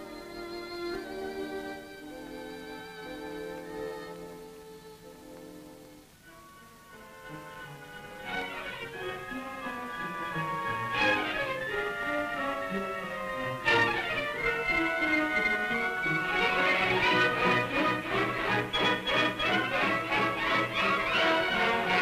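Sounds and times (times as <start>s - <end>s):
orchestral strings music: 0.0s - 22.0s.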